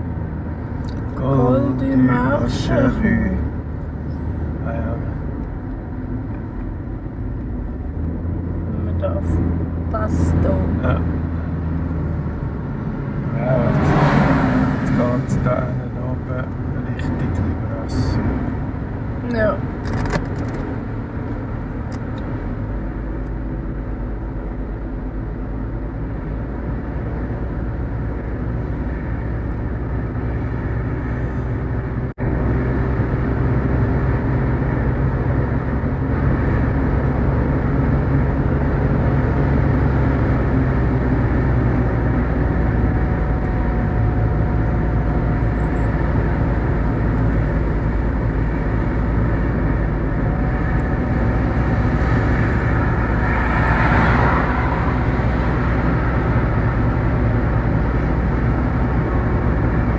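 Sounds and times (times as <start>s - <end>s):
car engine and tyre noise: 0.0s - 59.9s.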